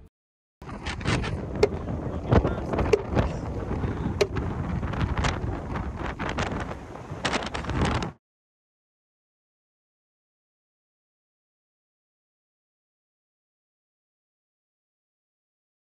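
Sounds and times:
wind buffeting microphone: 0:00.6 - 0:08.2
sharp knocks and clicks: 0:00.9 - 0:01.8.

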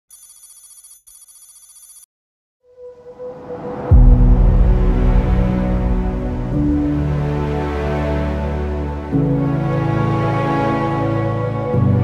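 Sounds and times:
electronic trilling ring: 0:00.1 - 0:02.1.

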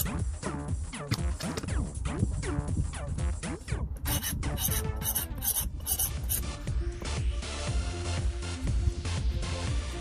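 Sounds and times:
sharpening stone rasping on blade: 0:04.0 - 0:06.5.

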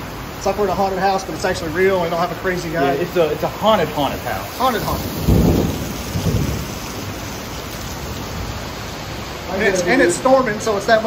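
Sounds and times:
heavy rain: 0:00.0 - 0:11.0
low thunder rumble: 0:03.3 - 0:09.0.

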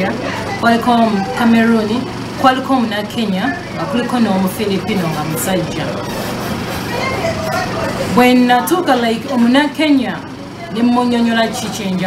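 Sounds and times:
faint indistinct voices: 0:00.0 - 0:12.0
steady background noise: 0:00.0 - 0:12.0.

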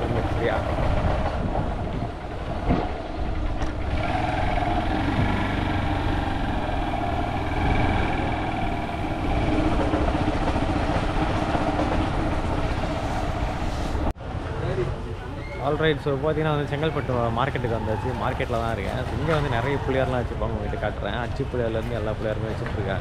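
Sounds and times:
motorbike engine running: 0:00.0 - 0:12.6
wind rumble on microphone: 0:00.0 - 0:14.1.

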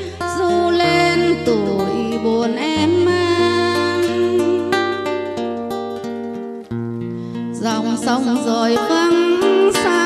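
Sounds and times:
acoustic guitar plucked notes: 0:00.0 - 0:10.0.

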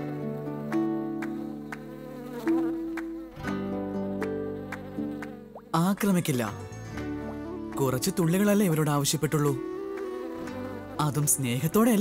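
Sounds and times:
bees buzzing: 0:00.0 - 0:05.8, 0:09.6 - 0:12.0.

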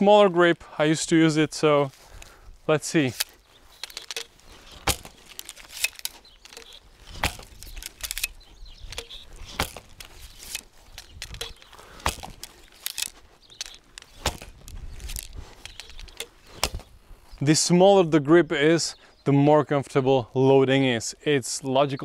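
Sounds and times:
footsteps on grass: 0:00.0 - 0:18.1
arrows striking target: 0:03.0 - 0:15.3, 0:16.2 - 0:16.9
bowstring release: 0:03.0 - 0:16.9.

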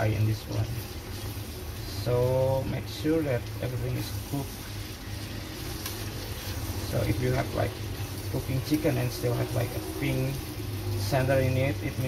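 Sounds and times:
chicken frying in a pot: 0:00.0 - 0:12.0
steady low hum: 0:00.0 - 0:12.0
stirring in a pot: 0:00.0 - 0:12.0.

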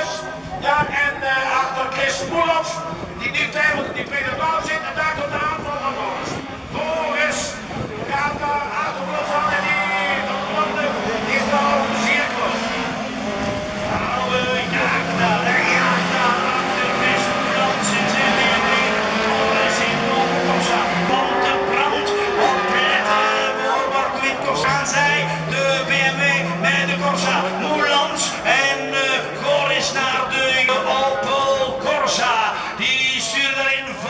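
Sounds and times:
race cars racing past: 0:00.0 - 0:34.0.

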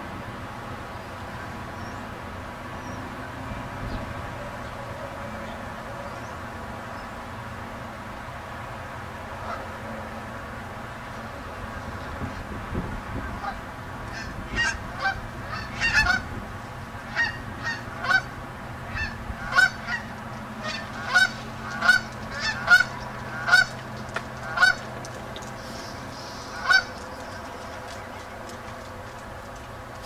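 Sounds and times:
geese honking: 0:09.4 - 0:10.1, 0:13.2 - 0:30.0.

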